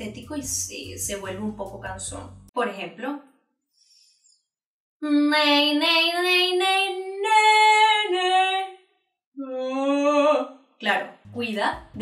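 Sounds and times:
woman singing unaccompanied: 5.0 - 8.7, 9.4 - 10.5.

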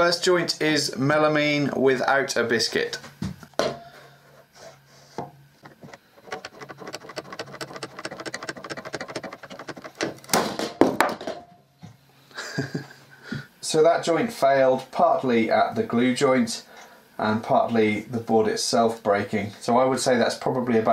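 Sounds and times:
clamp ratcheting clicks: 5.6 - 10.3
glue joint cracking: 5.6 - 10.4.

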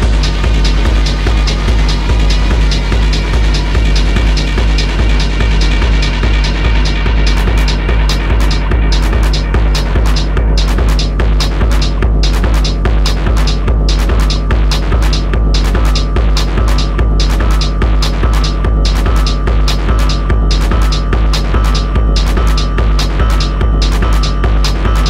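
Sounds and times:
kick drum and hi-hat beat: 0.0 - 25.0
sub-bass: 0.0 - 25.0.

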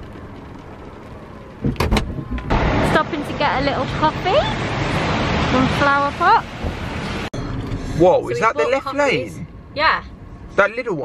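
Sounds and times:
car hatch thudding shut: 1.6 - 2.6.

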